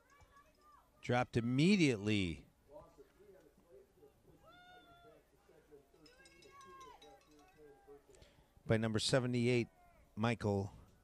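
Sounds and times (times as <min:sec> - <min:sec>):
distant murmur of voices: 0:02.6 - 0:08.6
high-pitched distant shouts: 0:06.0 - 0:08.0.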